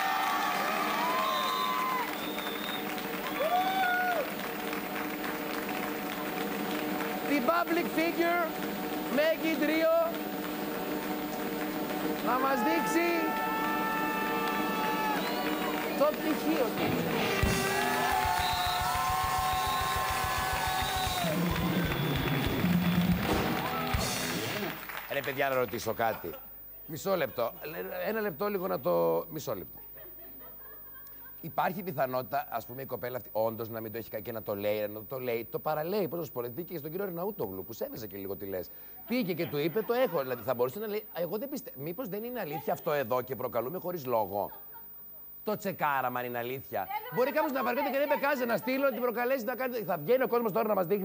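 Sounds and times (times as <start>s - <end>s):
audience clapping: 0.0s - 26.4s
band playing: 2.6s - 24.9s
drum kit fast beat: 15.5s - 24.8s.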